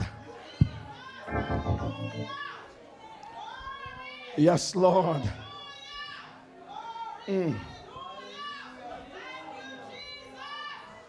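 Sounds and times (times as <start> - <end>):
high voice gliding up: 1.3 - 2.3.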